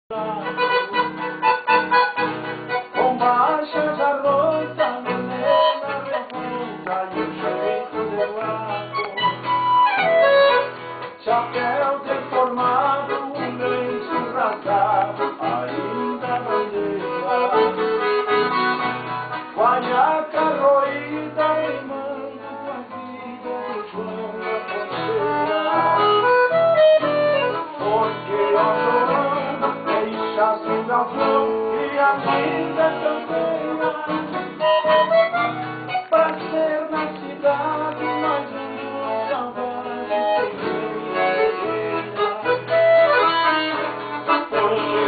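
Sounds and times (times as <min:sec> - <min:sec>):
accordion melody: 0:00.1 - 0:45.0
acoustic guitar playing: 0:00.1 - 0:45.0.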